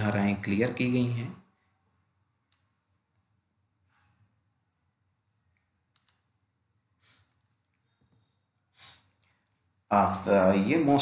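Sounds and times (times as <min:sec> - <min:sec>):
computer mouse click: 0:02.4 - 0:03.3, 0:05.5 - 0:06.4.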